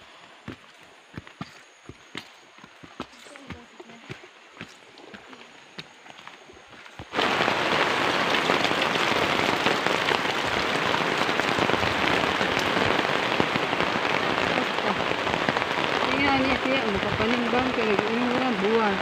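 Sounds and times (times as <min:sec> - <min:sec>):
rain on a fabric umbrella: 0:00.0 - 0:19.0
rain on wet concrete: 0:00.0 - 0:19.0
person speaking: 0:03.0 - 0:05.8.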